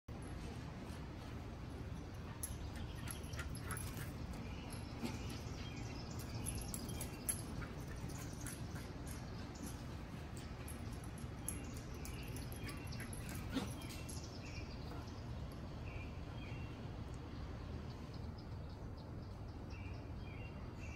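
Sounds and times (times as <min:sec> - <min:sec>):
low outdoor background rumble: 0:00.1 - 0:20.9
dogs yipping: 0:11.5 - 0:14.3.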